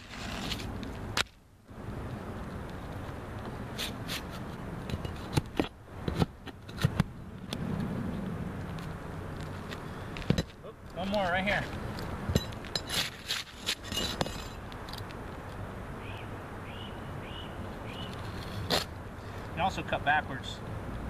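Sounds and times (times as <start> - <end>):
shingles scraping and ripping: 0.0 - 1.3, 12.8 - 14.6, 18.2 - 18.9.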